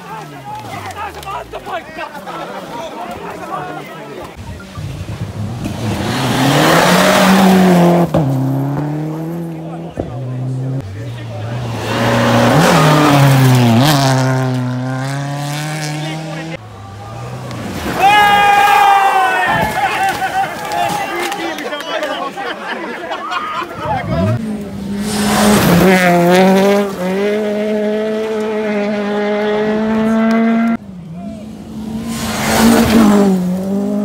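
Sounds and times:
rally car engine revving: 4.3 - 18.0, 24.0 - 34.0
loud high shout: 18.0 - 21.7.

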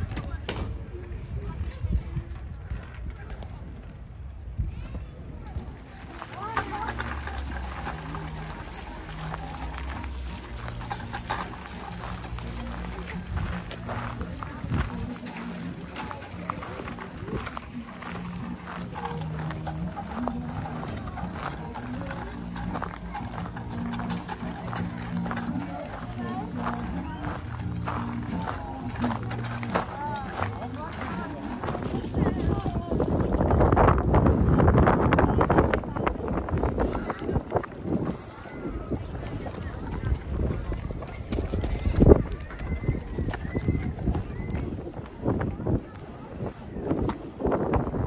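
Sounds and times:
people's voices: 0.0 - 48.0
footsteps on gravel: 5.5 - 33.4
fairground music: 5.8 - 32.6.

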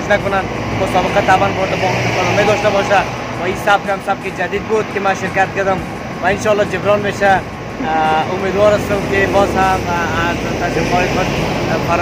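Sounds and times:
bus engine running: 0.0 - 12.0
men talking: 0.0 - 12.0.

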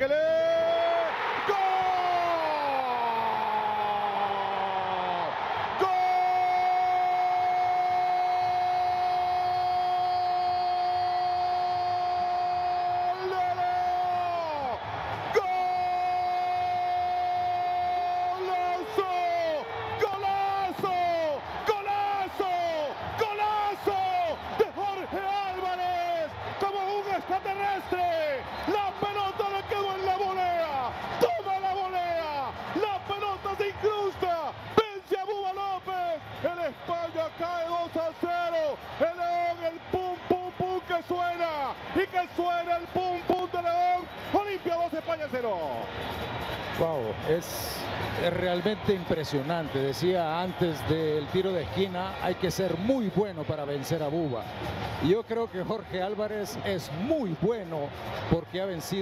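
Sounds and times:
stadium crowd noise: 0.0 - 59.0
commentator shouting: 11.2 - 37.3.

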